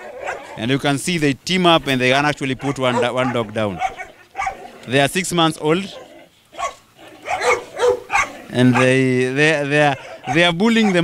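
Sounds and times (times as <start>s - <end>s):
puppies barking: 0.0s - 0.8s, 2.2s - 11.0s.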